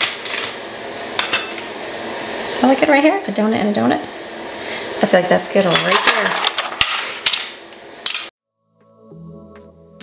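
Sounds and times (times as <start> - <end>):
soft background music: 8.6 - 10.0.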